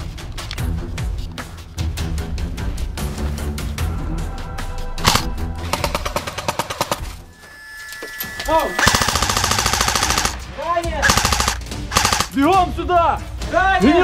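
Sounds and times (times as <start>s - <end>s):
background music: 0.0s - 14.0s
airsoft guns firing full-auto: 5.1s - 7.2s, 8.8s - 12.4s.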